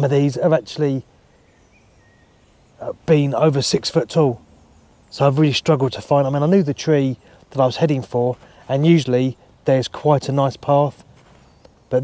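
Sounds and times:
faint bird calls: 0:00.0 - 0:12.0.

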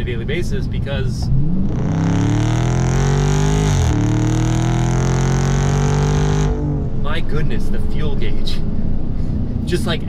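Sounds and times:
car engine exhaust accelerating: 0:00.6 - 0:10.0.

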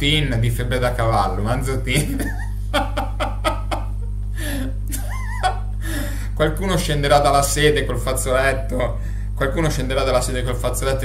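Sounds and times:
man laughing hard: 0:01.9 - 0:06.3
gasping breath: 0:04.4 - 0:04.8, 0:05.8 - 0:06.4.

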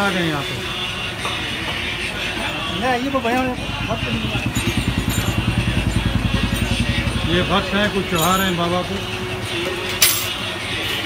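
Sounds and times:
motorcycle engine running: 0:01.8 - 0:09.9.

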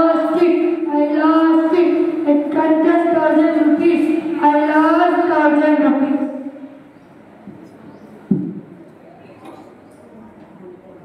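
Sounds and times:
faint hall noise: 0:00.0 - 0:11.0
microphone handling thump: 0:08.3 - 0:08.8.

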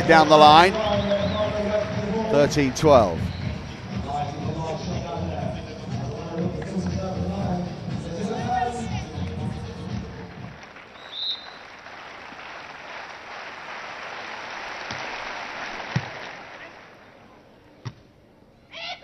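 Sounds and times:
crowd noise: 0:00.0 - 0:11.0
venue music: 0:00.0 - 0:12.0
referee's whistle: 0:00.8 - 0:01.6, 0:03.1 - 0:03.6, 0:11.0 - 0:11.6.

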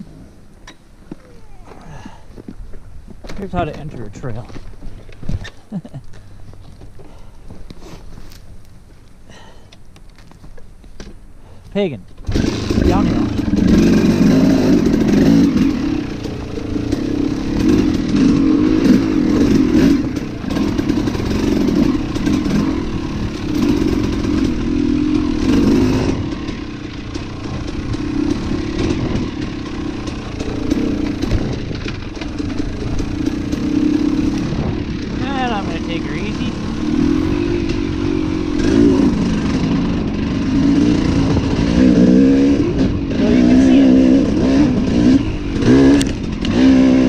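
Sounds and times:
dirt bike engine revving: 0:12.2 - 0:47.0.

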